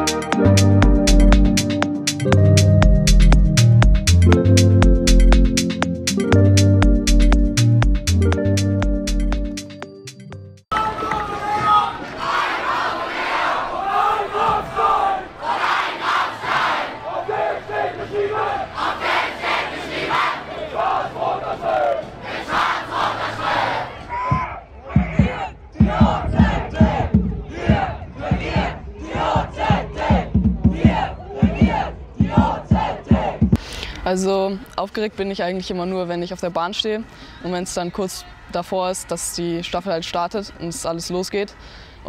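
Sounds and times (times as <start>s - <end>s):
students chanting in unison: 11.6s - 24.1s, 25.0s - 33.4s.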